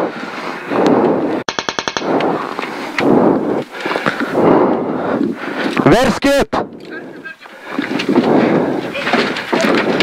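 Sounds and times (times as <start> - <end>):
sharp cracks: 1.4 - 3.7.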